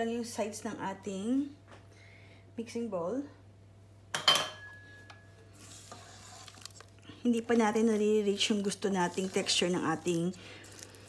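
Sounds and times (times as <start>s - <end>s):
spatula scraping bowl: 5.5s - 11.0s.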